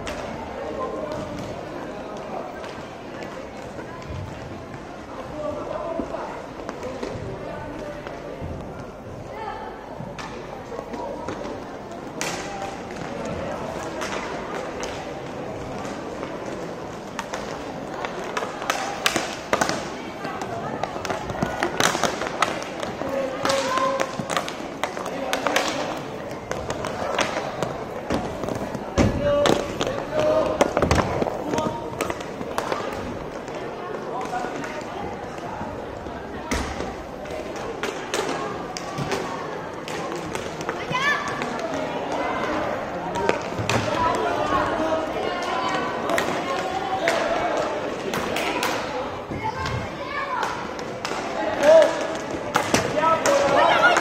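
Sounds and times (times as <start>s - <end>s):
voices of spectators and players: 0.0s - 54.0s
puck hitting sticks and boards: 10.1s - 35.5s, 36.5s - 54.0s
hockey sticks clacking: 10.2s - 35.5s, 36.5s - 54.0s.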